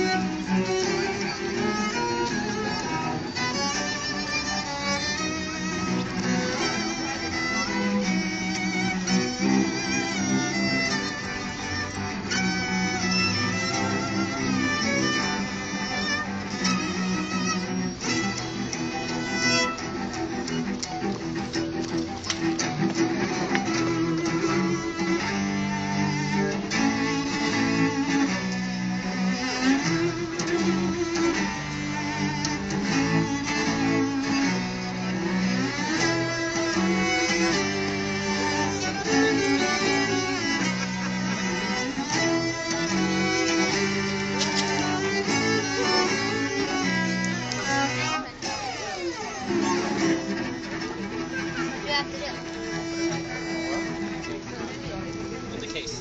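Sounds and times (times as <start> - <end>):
cellos playing held bowed notes: 0.0 - 56.0.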